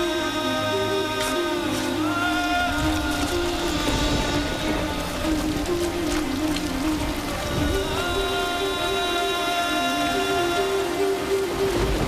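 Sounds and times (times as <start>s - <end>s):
low melody background music: 0.0s - 12.0s
rain falling: 0.0s - 12.0s.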